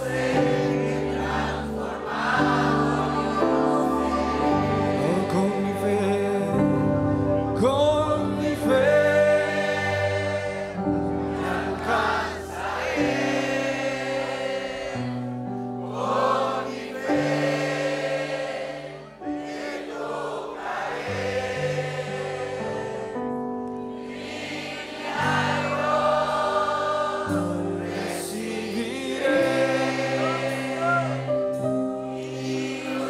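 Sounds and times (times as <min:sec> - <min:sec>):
voices singing gospel song: 0:00.0 - 0:06.9, 0:07.6 - 0:33.0
keyboard chords: 0:00.0 - 0:33.0.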